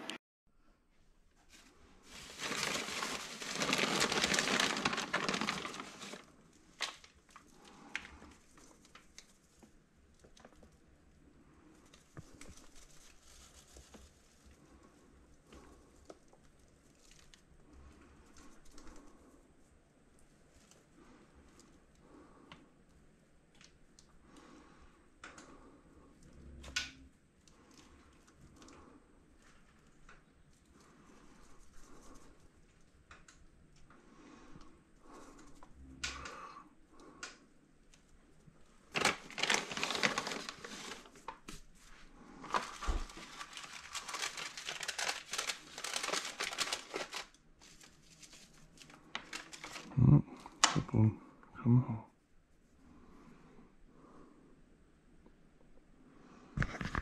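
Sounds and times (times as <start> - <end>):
packets rustling and crinkling: 1.4 - 11.0, 38.8 - 50.7
pots and soil being handled: 1.4 - 22.0.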